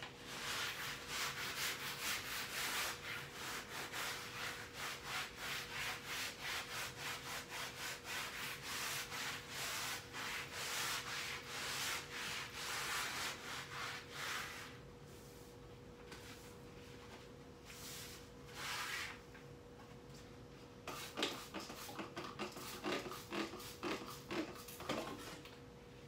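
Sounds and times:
hand scrubbing a wall: 0.2 - 19.2.

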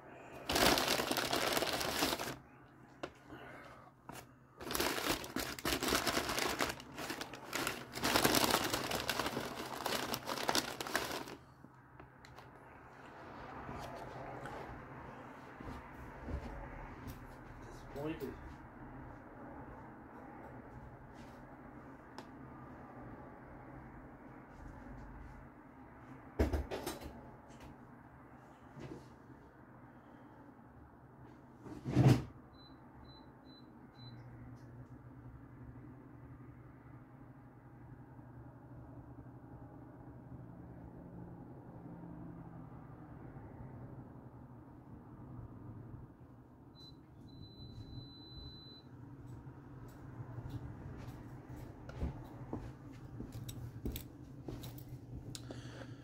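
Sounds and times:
microwave humming: 4.6 - 11.4
microwave beeps: 32.5 - 34.3, 46.7 - 49.0
keypad beeps: 46.8 - 48.8.

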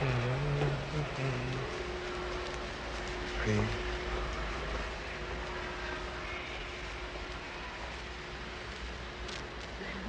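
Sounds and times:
faint steady hum: 0.0 - 10.0
low urban rumble: 0.0 - 10.0.

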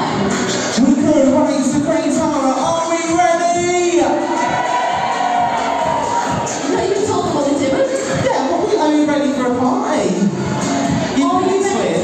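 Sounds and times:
amplified pop backing track: 0.0 - 12.0
crowd noise: 0.0 - 12.0.

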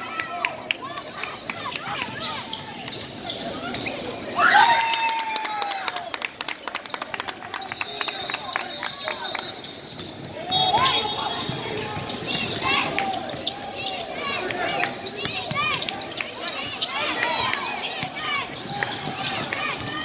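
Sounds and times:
voices in a hall: 0.0 - 20.0
sneakers squeaking: 1.1 - 4.4, 7.6 - 20.0.

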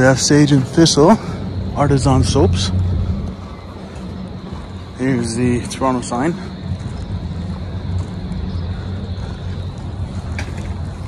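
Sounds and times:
low rumble of city noise: 0.0 - 11.0.

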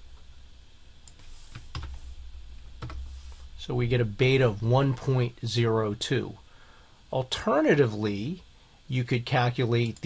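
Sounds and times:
faint low hum: 0.0 - 10.0
computer keyboard keystrokes: 1.6 - 2.0, 2.8 - 3.0.

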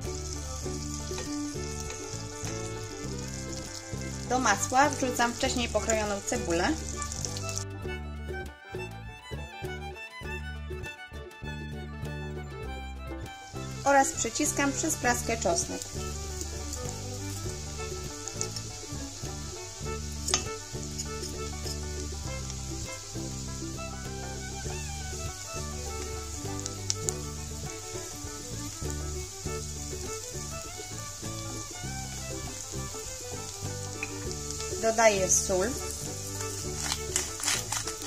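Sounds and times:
onion and garlic sizzling in butter: 0.0 - 7.8, 13.4 - 38.0
background music with bass notes: 0.0 - 38.0
wooden spatula stirring pot: 34.0 - 38.0.

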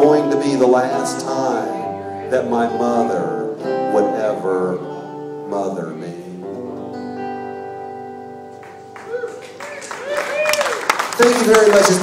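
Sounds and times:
acoustic guitar chord ringing: 0.0 - 9.1.

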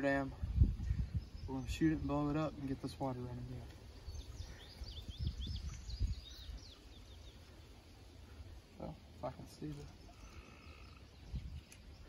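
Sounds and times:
small bird chirping: 4.0 - 7.8, 8.7 - 12.0.

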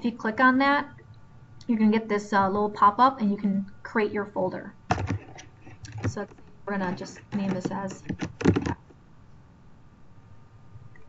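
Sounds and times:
computer keyboard key taps: 4.9 - 8.8.

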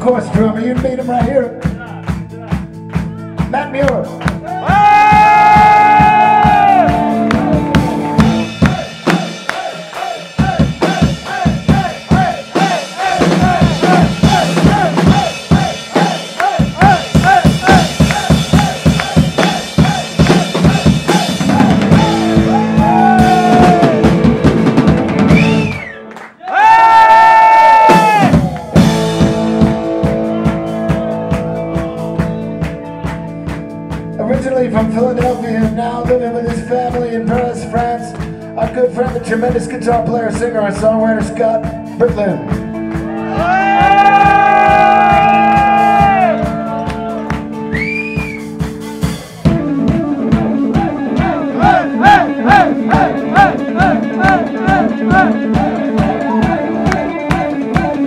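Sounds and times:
drum kit solo: 0.0 - 26.0, 27.4 - 58.0.

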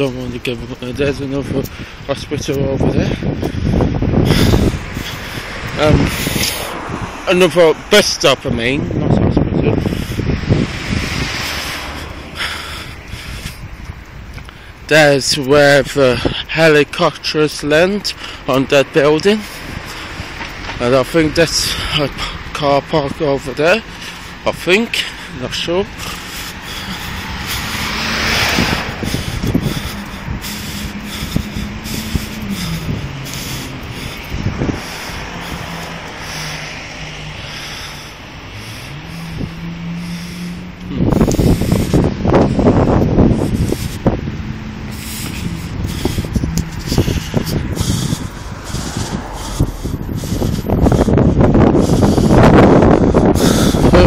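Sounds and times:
wind buffeting microphone: 0.0 - 54.0
low engine hum: 8.9 - 14.8, 23.8 - 54.0.

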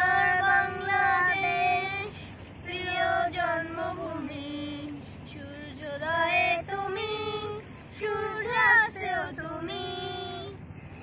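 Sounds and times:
woman and boys singing: 0.0 - 10.6.

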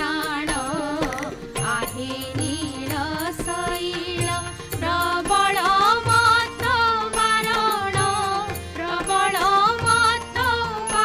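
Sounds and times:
harmonium drone: 0.0 - 11.0.

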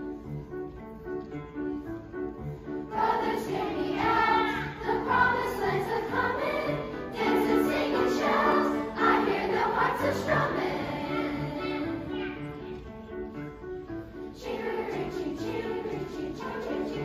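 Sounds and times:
grand piano accompaniment: 0.0 - 17.0
children's choir singing: 2.6 - 17.0.

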